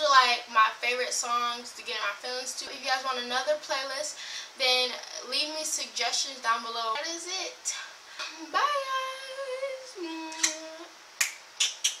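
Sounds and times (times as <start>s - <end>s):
finger snaps: 10.3s - 10.6s, 11.2s - 12.0s.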